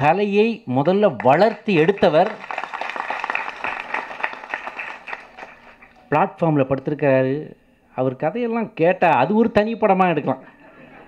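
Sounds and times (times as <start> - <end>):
audience applause: 1.4 - 6.0.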